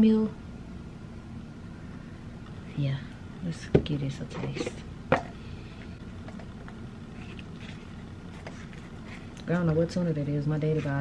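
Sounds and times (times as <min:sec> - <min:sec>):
steady low hum: 0:00.0 - 0:11.0
faint chewing: 0:06.3 - 0:09.5.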